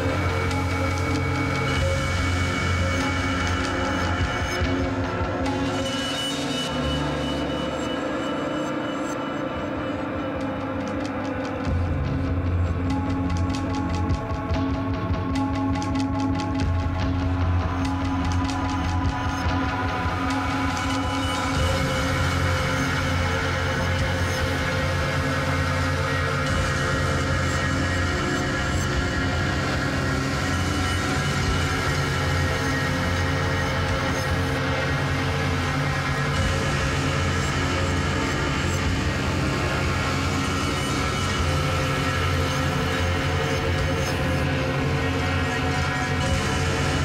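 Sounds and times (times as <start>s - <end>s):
experimental drone music: 0.0s - 47.0s.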